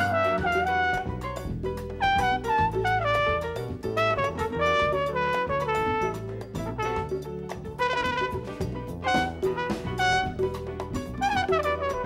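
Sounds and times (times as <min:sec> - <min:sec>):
brass horn solo: 0:00.0 - 0:07.2, 0:07.8 - 0:12.0
bass: 0:00.0 - 0:12.0
steady percussion: 0:00.0 - 0:12.0.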